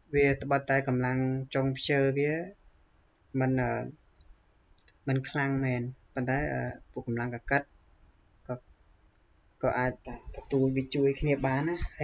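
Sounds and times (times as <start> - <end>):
person speaking: 0.1 - 2.5, 3.4 - 3.9, 5.1 - 7.6, 9.6 - 12.0.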